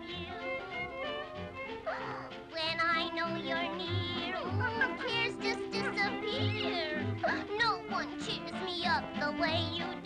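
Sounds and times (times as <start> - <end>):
cartoon music with bass: 0.0 - 10.0.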